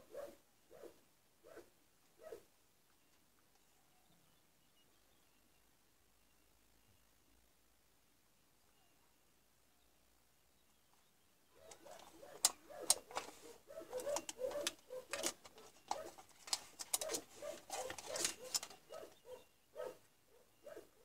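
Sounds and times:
sharp clicks: 11.6 - 19.0.

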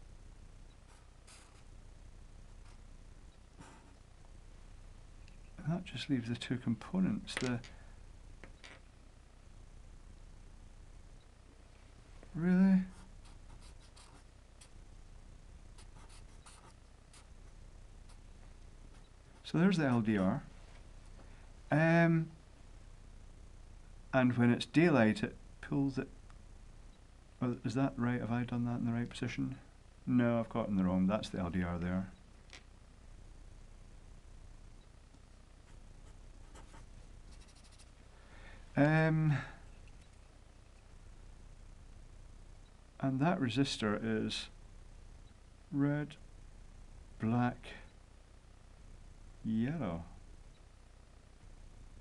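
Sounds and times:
marker pen drawing on paper: 0.9 - 1.7, 15.8 - 17.3, 35.7 - 37.9.

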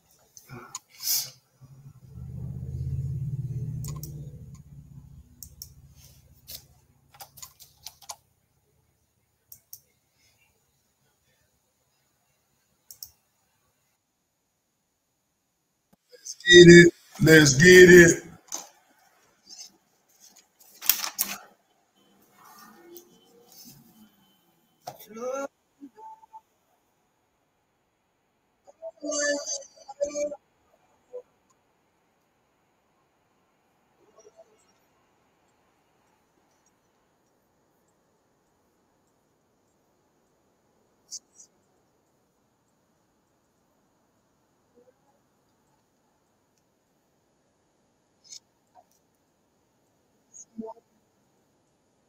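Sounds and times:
low steady hum: 1.6 - 7.5
short irregular clicks: 12.9 - 13.2
short voice-like sound: 16.4 - 18.3.

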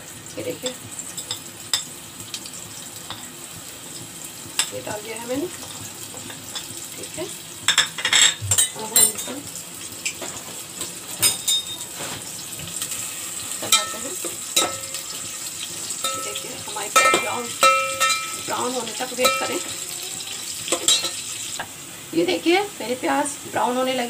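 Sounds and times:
onions sizzling in hot oil: 0.0 - 24.0.

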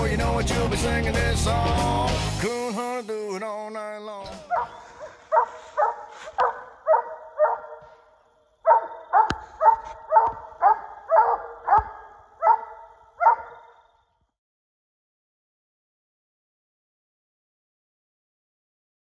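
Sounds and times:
dog barking in short chops: 4.5 - 13.8.

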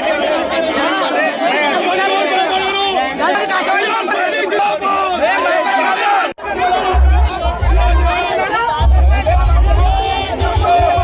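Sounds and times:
crowd of men shouting: 0.0 - 11.0.

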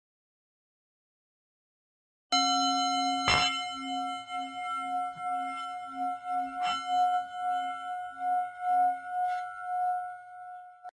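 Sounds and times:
singing bowl ringing: 2.4 - 11.0.

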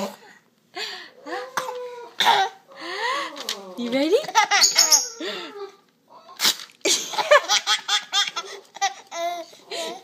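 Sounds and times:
baby laughing: 4.2 - 5.7, 6.3 - 10.0.

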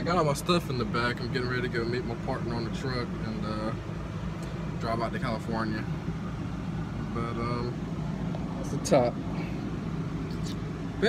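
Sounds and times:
car air conditioning hum: 0.0 - 11.0.

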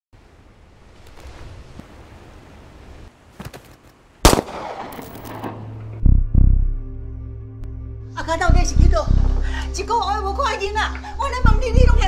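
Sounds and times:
gunshot bang: 4.2 - 5.7.

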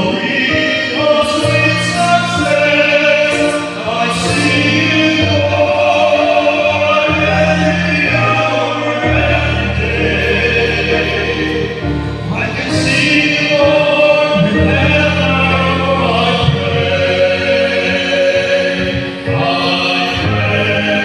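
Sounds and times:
choir singing in harmony: 0.0 - 21.0
held bass notes: 0.0 - 21.0.

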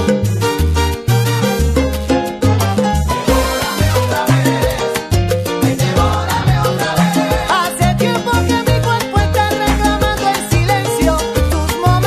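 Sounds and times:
instrumental salsa music: 0.0 - 12.0.

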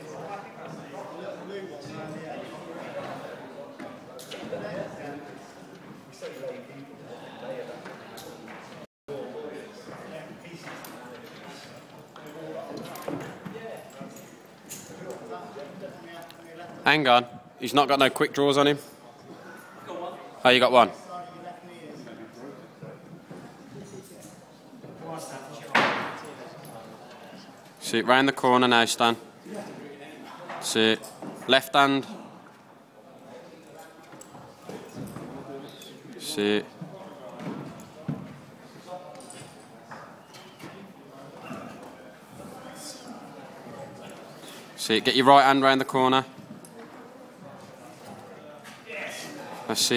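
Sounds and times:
voices echoing in a hall: 0.0 - 49.9.

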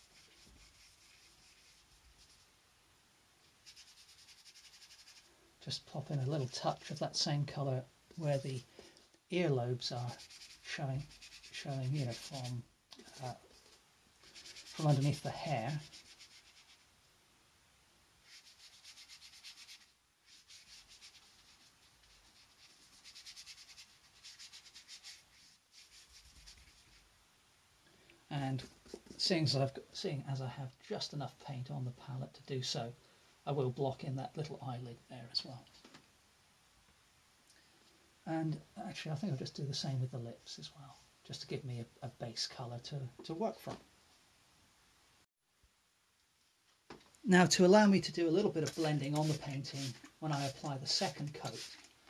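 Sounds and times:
brush stroking paint on paper: 0.0 - 2.5, 3.4 - 5.3, 9.7 - 16.9, 18.2 - 27.1, 48.0 - 52.0.

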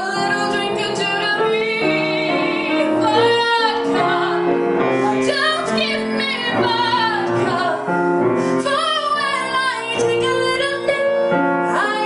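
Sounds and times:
instrumental backing: 0.0 - 12.0
woman singing into microphone: 0.0 - 12.0.

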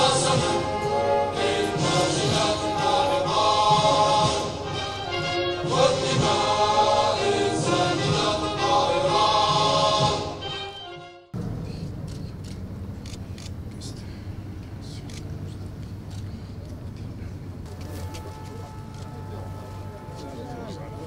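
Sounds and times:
choir singing sustained notes: 0.0 - 11.2, 18.0 - 21.0
orchestral accompaniment: 0.0 - 11.4, 17.7 - 21.0.

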